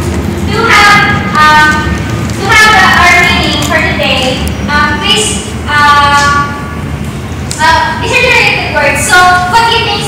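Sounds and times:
low background rumble: 0:00.0 - 0:10.0
woman speaking: 0:00.5 - 0:06.6, 0:07.6 - 0:10.0.

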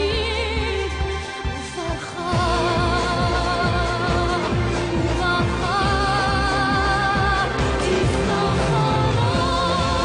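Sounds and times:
band accompaniment: 0:02.1 - 0:10.0.

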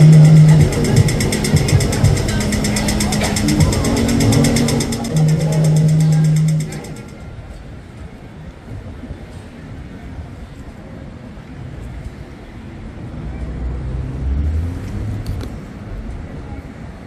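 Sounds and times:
loud low drone: 0:00.0 - 0:07.5
crossing signal rapid ticking: 0:00.0 - 0:07.6.

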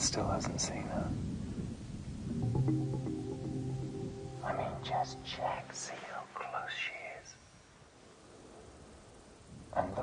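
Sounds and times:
low hiss: 0:00.0 - 0:10.0
faint background music: 0:02.2 - 0:07.6
man whispering: 0:04.4 - 0:07.4, 0:09.8 - 0:10.0.

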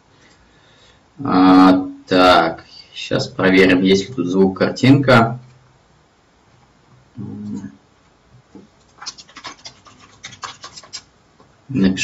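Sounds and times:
computer keyboard typing: 0:08.8 - 0:11.1.

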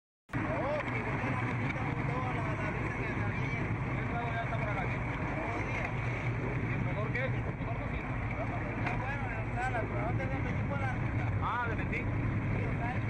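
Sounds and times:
boat engine humming: 0:00.3 - 0:13.0.

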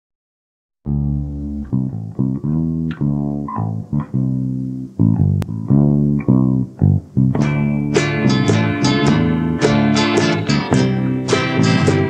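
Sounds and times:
bass and guitar plucked notes: 0:00.8 - 0:12.0.

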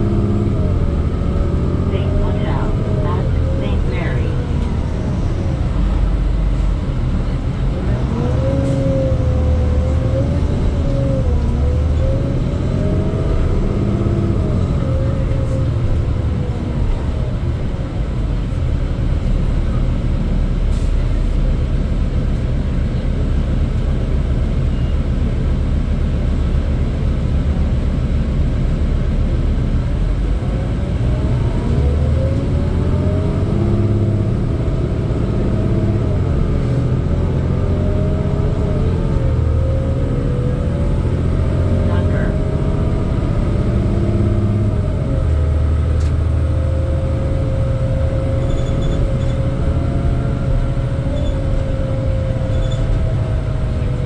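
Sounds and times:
bus engine rumble: 0:00.0 - 0:54.0
engine and driveline whine: 0:00.0 - 0:54.0.

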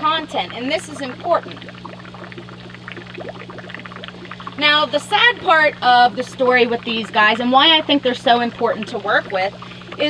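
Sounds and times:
steady low hum: 0:00.0 - 0:10.0
water trickling and splashing: 0:00.0 - 0:10.0.

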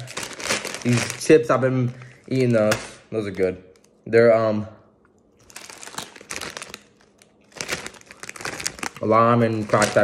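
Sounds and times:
chip bag crinkling: 0:00.0 - 0:04.0, 0:05.4 - 0:10.0.

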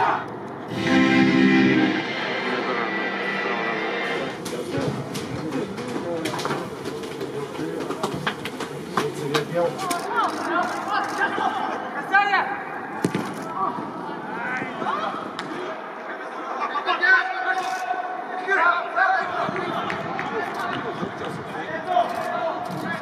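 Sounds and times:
players shouting and calling: 0:00.0 - 0:05.9, 0:08.6 - 0:23.0
music: 0:00.7 - 0:04.4.

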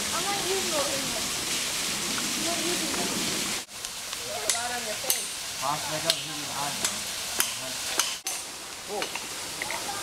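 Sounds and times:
voices: 0:00.0 - 0:01.4, 0:02.3 - 0:03.3, 0:04.1 - 0:08.0, 0:08.8 - 0:10.0
creek water rushing: 0:00.0 - 0:10.0.

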